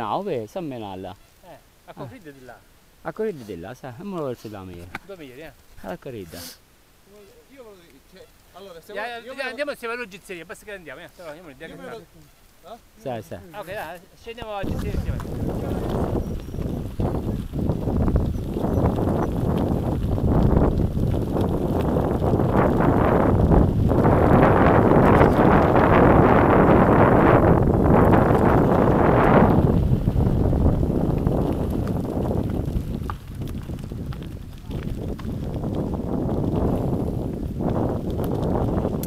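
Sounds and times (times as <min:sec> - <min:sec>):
bike tyres crunching on gravel: 0:00.0 - 0:39.0
bike rattling over bumps: 0:14.4 - 0:39.0
wind on microphone: 0:14.4 - 0:39.0.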